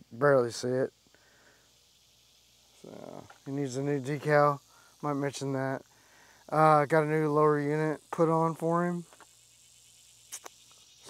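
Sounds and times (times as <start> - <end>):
insects chirping: 0.0 - 11.0.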